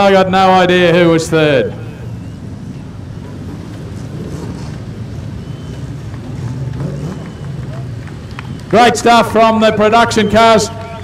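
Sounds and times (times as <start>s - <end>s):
distant race car engine: 0.0s - 11.0s
outdoor background rumble: 0.0s - 11.0s.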